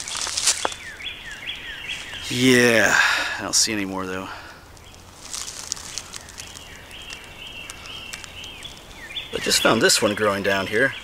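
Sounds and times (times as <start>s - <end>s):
highway traffic rumble: 0.0s - 11.0s
leaves crackling underfoot: 0.0s - 11.0s.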